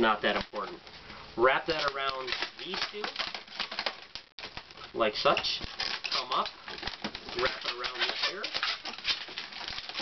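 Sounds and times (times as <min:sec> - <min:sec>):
balloons squeaking and rubbing: 0:00.0 - 0:10.0.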